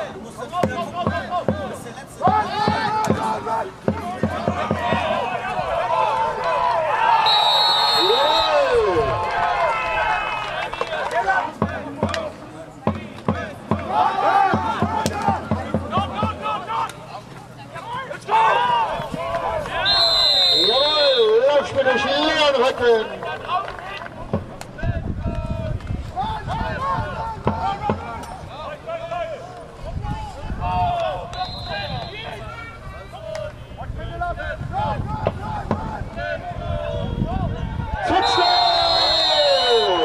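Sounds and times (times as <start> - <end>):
people shouting: 2.2 - 11.9, 13.4 - 17.0, 18.0 - 22.5, 34.8 - 40.0
referee's whistle: 7.2 - 8.9, 19.8 - 21.5, 31.3 - 32.4, 38.1 - 40.0.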